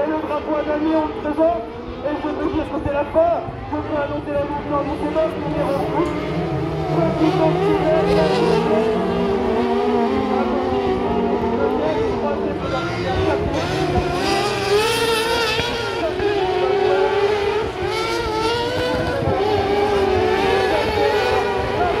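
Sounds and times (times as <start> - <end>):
buggy engines racing: 0.0 - 22.0.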